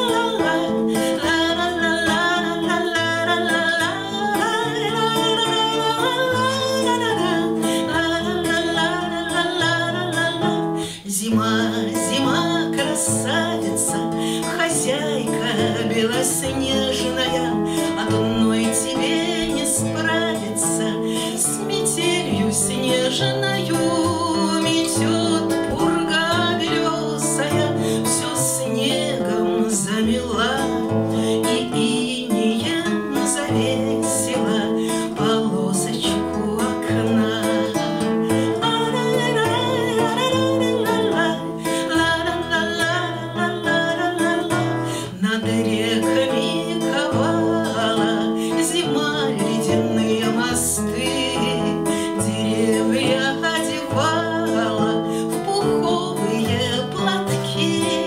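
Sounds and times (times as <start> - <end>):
strummed acoustic guitar: 0.0 - 58.0
woman singing: 0.0 - 58.0.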